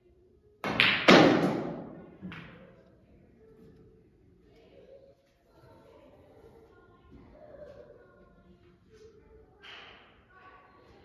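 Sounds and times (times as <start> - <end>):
snooker balls clacking: 0.6 - 2.7.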